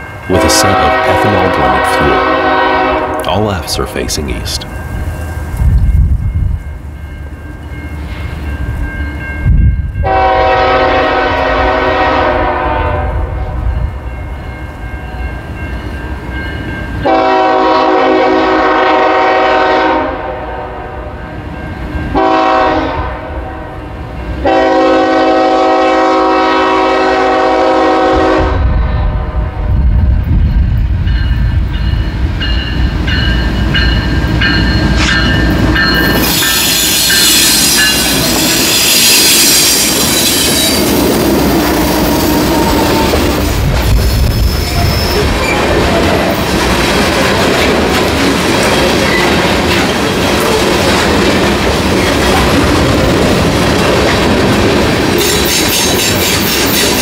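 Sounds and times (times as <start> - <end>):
crossing bell ringing: 0.0 - 11.7, 13.4 - 17.8, 21.0 - 22.6, 30.3 - 46.5
diesel locomotives rumbling: 0.0 - 57.0
locomotive horn blasts: 0.3 - 3.4, 10.0 - 13.3, 17.0 - 21.1, 22.1 - 23.7, 24.4 - 29.3, 41.7 - 43.3
wheels rushing on rail: 4.6 - 57.0.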